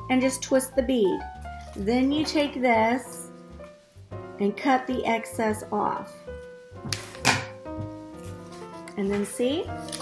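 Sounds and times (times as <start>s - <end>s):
background music with held notes: 0.0s - 10.0s
scissors cutting plastic: 9.8s - 10.0s.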